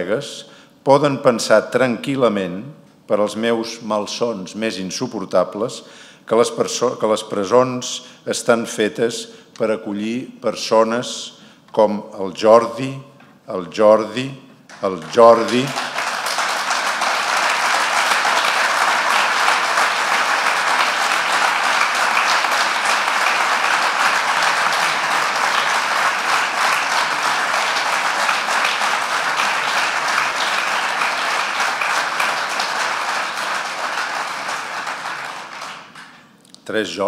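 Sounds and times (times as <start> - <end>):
audience applauding: 14.7 - 36.3.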